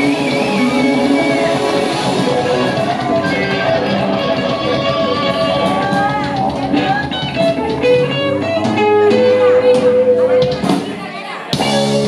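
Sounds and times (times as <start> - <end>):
electric guitar lead with bent notes: 0.0 - 10.8, 11.5 - 12.0
live rock band playing: 0.0 - 12.0.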